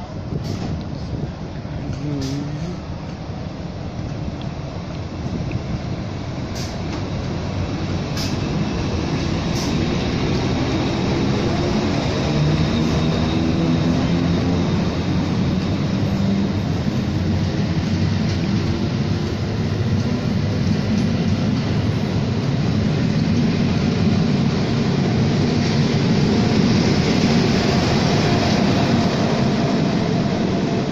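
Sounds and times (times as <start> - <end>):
diesel engine drone: 0.0 - 30.9
train wheels rumbling on rails: 0.0 - 30.9.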